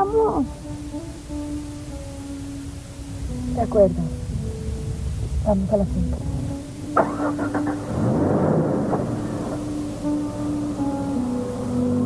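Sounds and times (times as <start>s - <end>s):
car engine cranking and revving: 7.0s - 10.2s.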